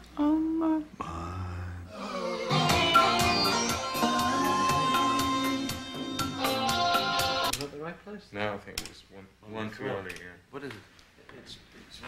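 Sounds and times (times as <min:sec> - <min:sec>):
rock music with drums: 0:02.6 - 0:07.5.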